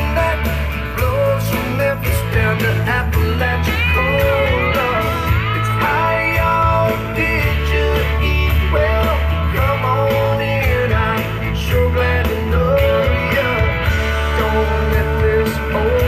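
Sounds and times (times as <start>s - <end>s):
country rock music with guitar: 0.0s - 16.0s.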